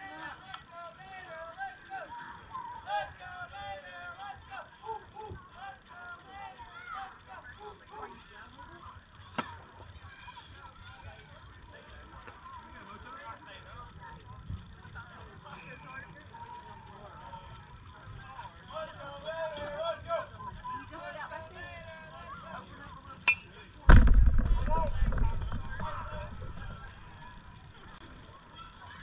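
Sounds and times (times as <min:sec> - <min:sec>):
distant voices chattering: 0:00.0 - 0:29.0.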